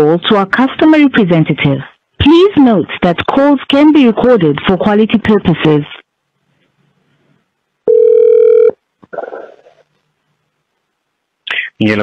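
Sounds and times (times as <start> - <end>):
telephone beep: 7.9 - 9.4.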